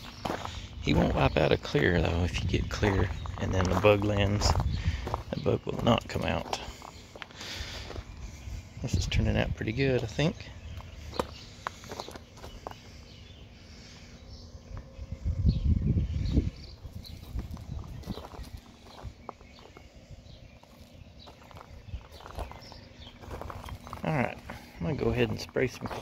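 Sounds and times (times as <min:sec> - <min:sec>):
footsteps on gravel: 0:00.0 - 0:13.4, 0:16.3 - 0:26.0
faint steady hum: 0:00.0 - 0:26.0
low rumble: 0:14.2 - 0:24.9.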